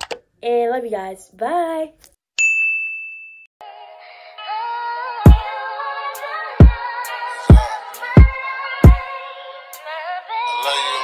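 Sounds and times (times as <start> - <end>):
bright ding: 2.4 - 3.5.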